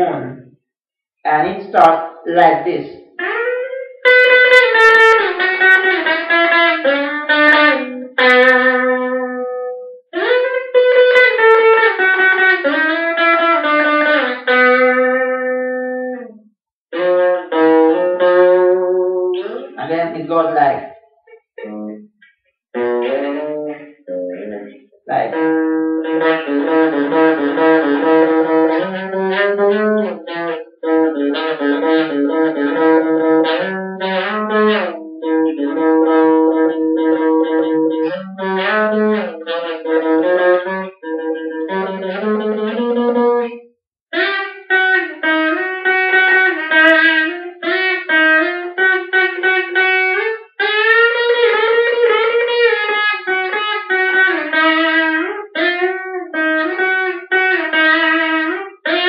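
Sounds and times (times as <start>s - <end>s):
electric guitar solo: 1.3s - 22.1s, 22.8s - 59.0s.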